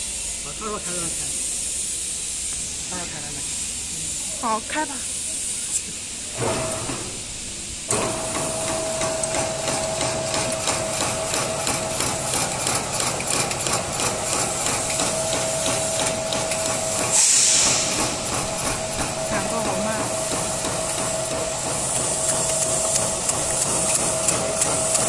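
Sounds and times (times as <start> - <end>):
loud hiss: 0.0 - 25.0
cutting machine motor hum: 7.9 - 25.0.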